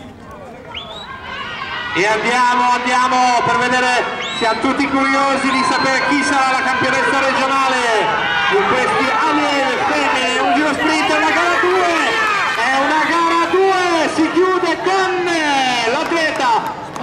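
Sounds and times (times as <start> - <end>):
man commentating loudly: 1.9 - 16.7.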